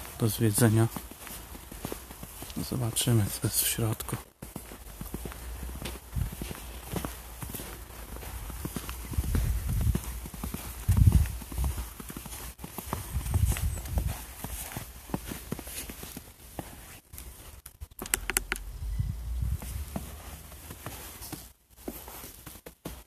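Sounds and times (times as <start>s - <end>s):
footsteps crunching through snow: 0.0s - 17.9s, 18.6s - 23.0s
low rumbles: 17.5s - 20.8s.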